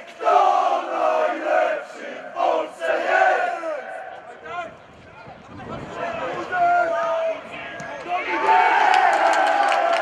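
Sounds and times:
crowd chanting in unison: 0.0 - 4.2.

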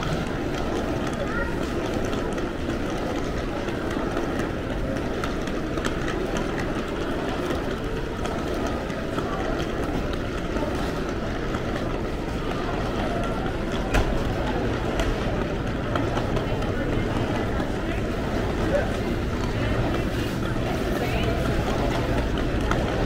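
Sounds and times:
rumble of crowd and building: 0.0 - 23.0.

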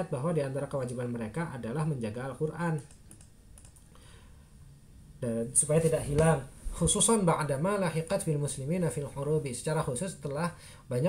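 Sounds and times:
computer mouse clicks: 2.8 - 4.0.

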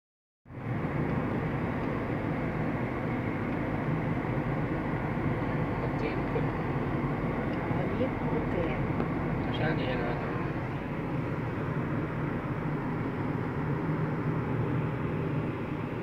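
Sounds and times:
road and wind noise: 0.4 - 16.0
vehicle rumble: 0.5 - 16.0.

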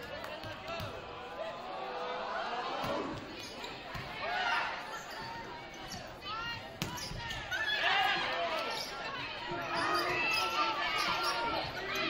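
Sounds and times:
voices of people: 0.0 - 12.0
shoes squeaking on gym floor: 4.9 - 7.8, 8.6 - 12.0.

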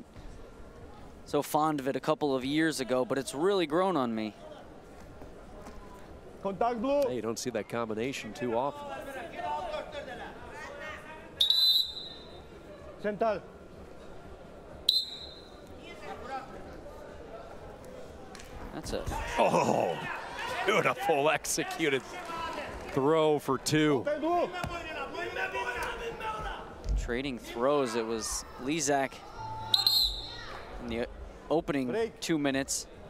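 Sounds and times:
arena hall noise: 0.0 - 33.0
referee's whistle: 11.4 - 12.4, 14.9 - 15.6, 29.4 - 30.6
faint shouting voices: 24.1 - 26.8, 27.5 - 30.9.

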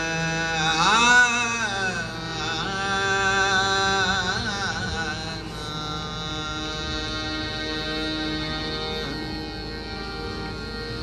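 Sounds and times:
drone: 0.0 - 11.0
harmonium holding notes: 0.0 - 11.0.

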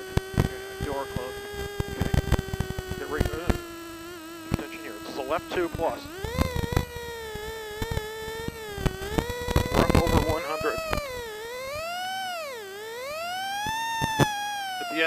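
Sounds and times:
rally car engine whine: 0.0 - 15.0.

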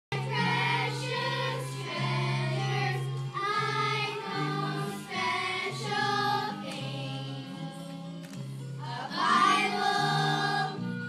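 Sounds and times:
children's choir singing: 0.2 - 8.0, 8.8 - 11.0.

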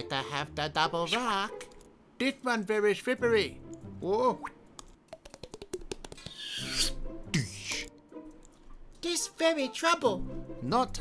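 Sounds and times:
hands slapping wet plastic sheeting: 5.2 - 6.4.

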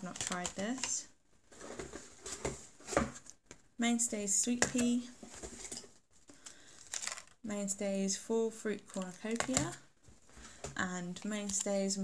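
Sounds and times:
plastic packs rustling: 0.0 - 3.3, 5.2 - 7.4, 8.8 - 12.0.

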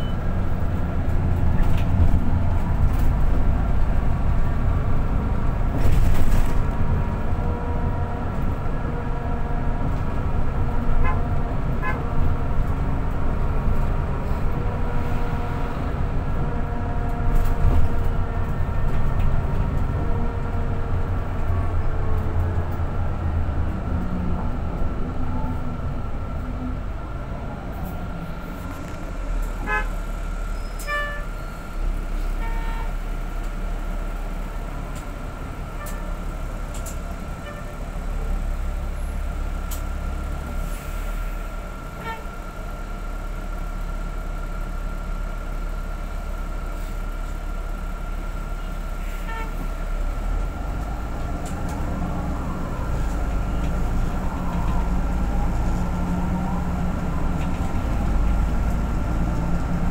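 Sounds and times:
bus engine low rumble: 0.0 - 59.9.

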